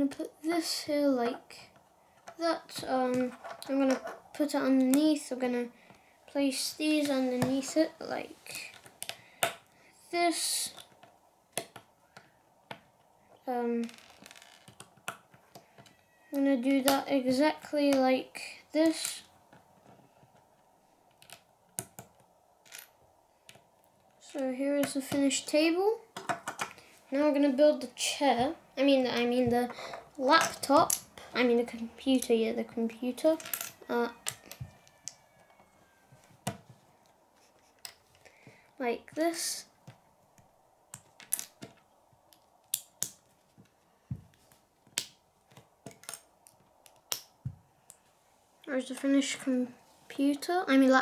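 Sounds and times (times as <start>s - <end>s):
plastic bricks clicking together: 40.9s - 43.2s.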